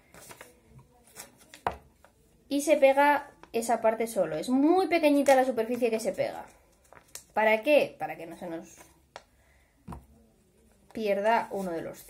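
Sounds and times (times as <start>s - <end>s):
paper handling: 0.0s - 2.2s, 6.5s - 7.3s.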